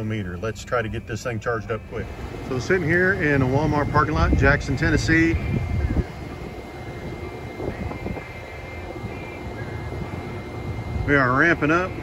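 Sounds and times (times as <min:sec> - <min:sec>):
charger cooling fans whooshing: 0:00.0 - 0:12.0
thin high-pitched whine: 0:00.0 - 0:12.0.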